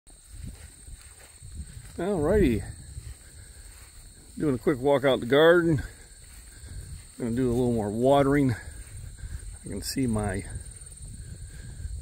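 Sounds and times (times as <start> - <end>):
footsteps outdoors: 0.1 - 12.0.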